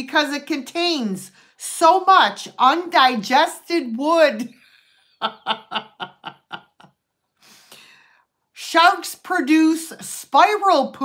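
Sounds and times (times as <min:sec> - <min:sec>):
woman laughing: 0:04.5 - 0:07.0.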